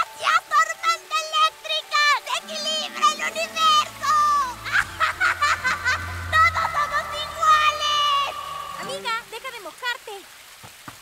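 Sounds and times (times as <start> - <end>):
rain hissing: 0.0 - 11.0.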